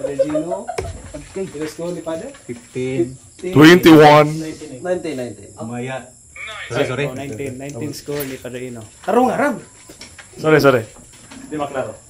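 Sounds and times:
people talking: 0.0s - 9.7s.

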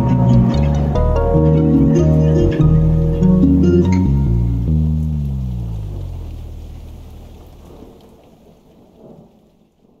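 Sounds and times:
low bass note: 0.0s - 7.8s
rain: 0.0s - 10.0s.

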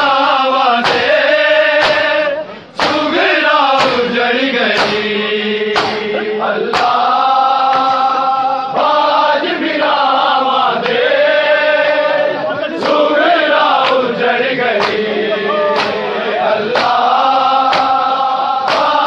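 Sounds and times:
men chanting in unison: 0.0s - 19.0s
hands slapping chests: 0.8s - 1.1s, 1.8s - 8.2s, 10.8s - 11.1s, 12.7s - 19.0s.

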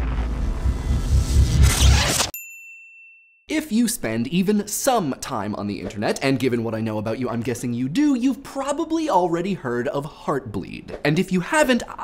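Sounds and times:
bass-heavy theme music: 0.0s - 2.3s.

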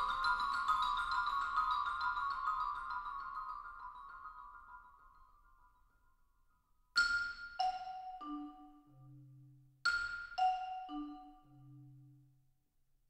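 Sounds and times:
mallet percussion fast high notes: 0.0s - 5.2s, 7.0s - 9.1s, 9.9s - 12.0s.

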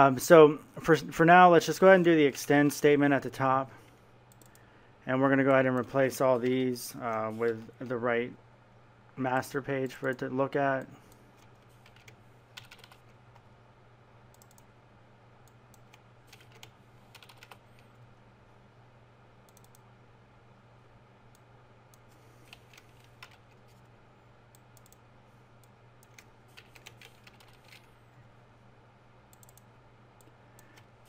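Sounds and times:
steady low hum: 0.0s - 31.0s
computer keyboard typing: 11.4s - 13.2s, 14.3s - 14.7s, 15.5s - 17.9s, 22.4s - 23.6s, 26.0s - 27.9s, 29.3s - 29.6s.

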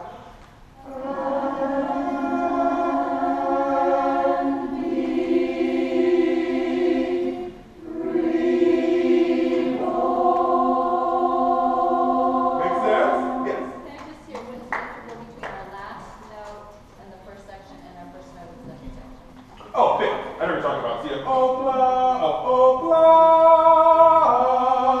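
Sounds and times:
choir singing unaccompanied: 0.8s - 13.9s, 21.0s - 25.0s.

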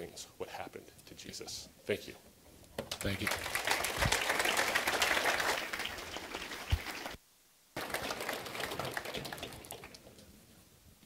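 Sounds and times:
audience applauding: 2.9s - 7.2s, 7.8s - 10.0s.

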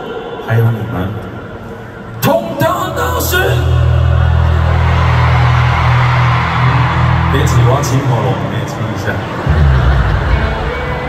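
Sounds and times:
loud live band music: 9.3s - 11.0s
deep bass note: 9.4s - 11.0s.

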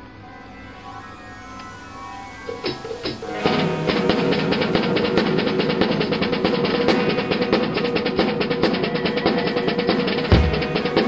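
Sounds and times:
recorded band music: 2.5s - 11.0s
acoustic drum kit: 3.3s - 11.0s.

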